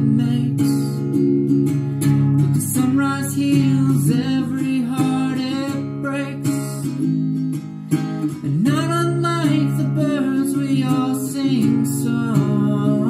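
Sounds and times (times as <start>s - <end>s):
man singing: 0.0s - 1.3s, 2.4s - 7.4s, 8.4s - 13.0s
acoustic guitar strummed: 0.0s - 13.0s.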